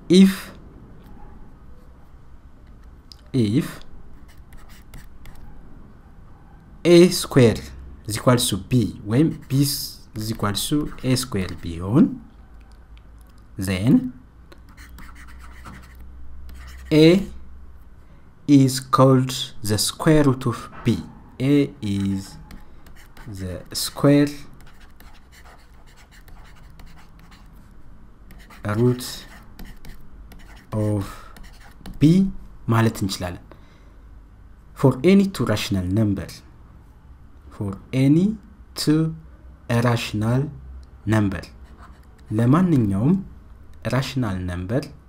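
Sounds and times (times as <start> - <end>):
stylus tapping and scratching tablet: 4.2 - 5.4, 9.2 - 11.8, 14.5 - 17.0, 21.8 - 24.0, 24.6 - 27.7, 28.3 - 32.1.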